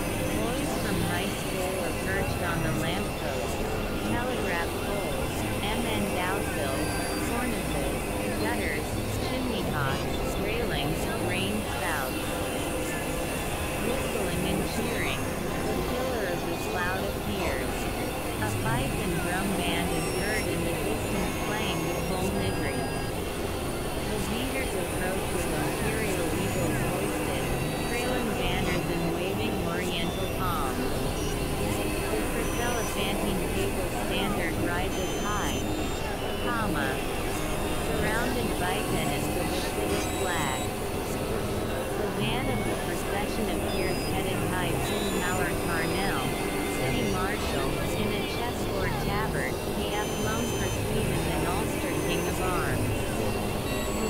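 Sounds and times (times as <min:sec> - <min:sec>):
electronic noise drone: 0:00.0 - 0:54.0
indistinct buried voices: 0:00.0 - 0:54.0.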